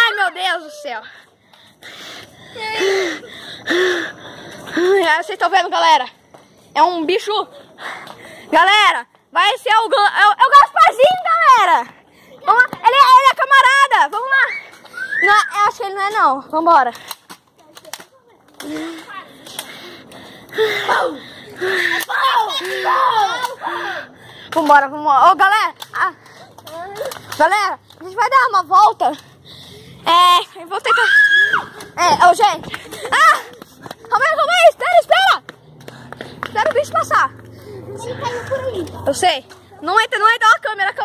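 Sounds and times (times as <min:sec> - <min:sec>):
children talking and calling out: 0:00.0 - 0:41.0.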